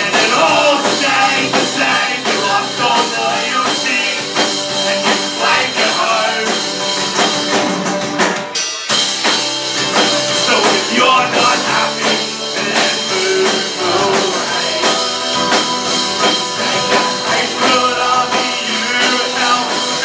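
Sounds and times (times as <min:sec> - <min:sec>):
bass guitar: 0:00.0 - 0:20.0
drum kit: 0:00.0 - 0:20.0
electric guitar: 0:00.0 - 0:20.0
strummed acoustic guitar: 0:00.0 - 0:20.0.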